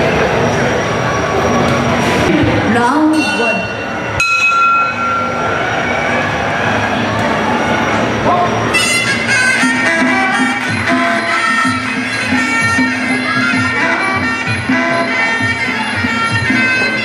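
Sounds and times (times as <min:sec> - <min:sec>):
crowd murmur: 0:00.0 - 0:17.0
oboe playing reedy notes: 0:08.7 - 0:17.0.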